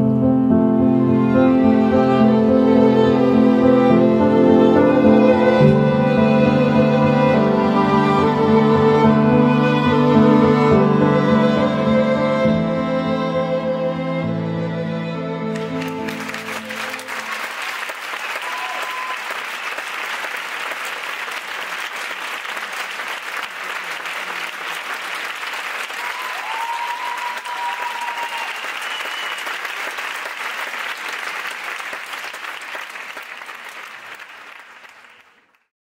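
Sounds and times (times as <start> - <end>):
music: 0.0 - 17.4
audience applauding: 15.5 - 35.7
short high calls: 18.4 - 19.4.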